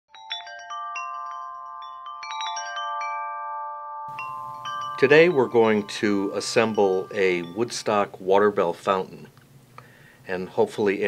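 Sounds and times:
metal chimes ringing: 0.1s - 9.2s.

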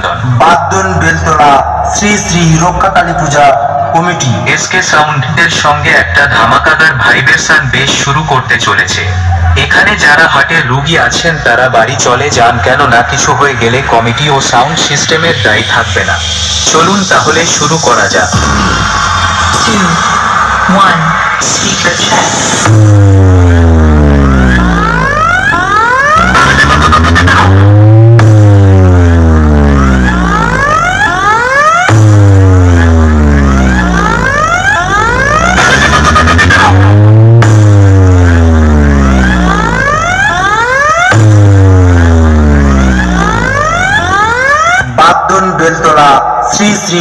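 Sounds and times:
deep bass sweeps falling in pitch: 0.0s - 4.7s, 17.7s - 45.3s
rising sweeps: 15.2s - 44.8s.

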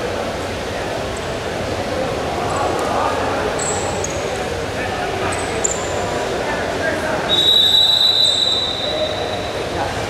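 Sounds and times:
arena crowd murmur: 0.0s - 10.0s.

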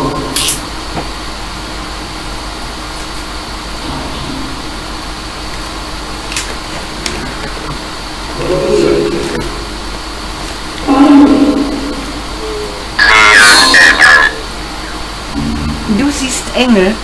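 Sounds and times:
steady static hiss: 0.0s - 17.0s.

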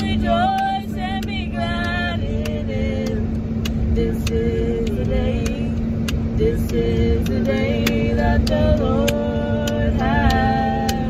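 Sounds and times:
heavy low rumble: 0.0s - 11.0s
steady low hum: 0.0s - 11.0s
person singing gospel: 6.4s - 11.0s.

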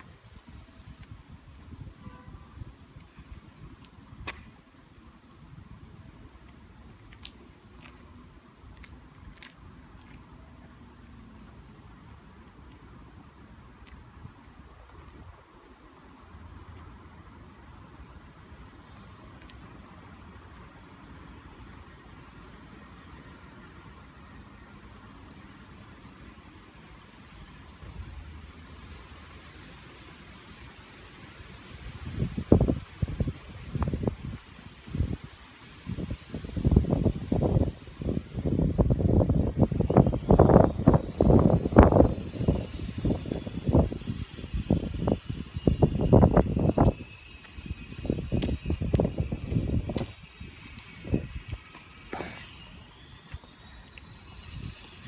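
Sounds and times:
wind gusting on microphone: 31.7s - 55.0s.

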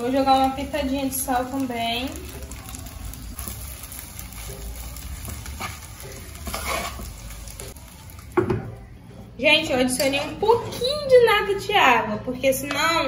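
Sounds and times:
stirring in a pot: 0.0s - 8.4s
spaghetti sizzling in oil: 0.0s - 8.8s.

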